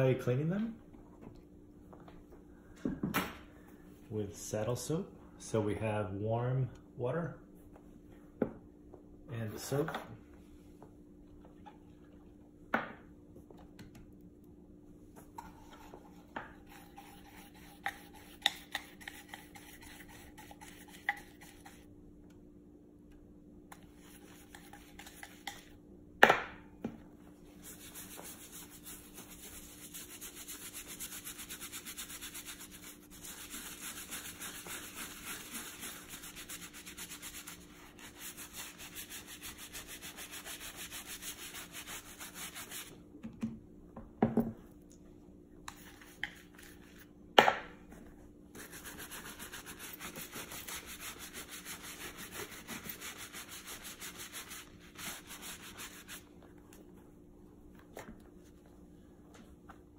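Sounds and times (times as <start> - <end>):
brush scrubbing soap in a tin: 15.5 - 21.9, 23.7 - 25.7, 27.5 - 42.9, 48.6 - 56.3.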